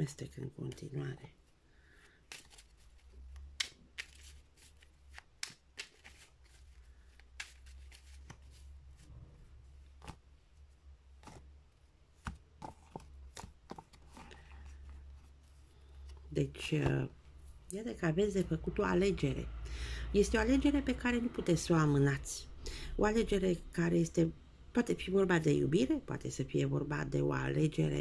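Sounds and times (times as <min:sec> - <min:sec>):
cards being shuffled: 0:01.9 - 0:17.0.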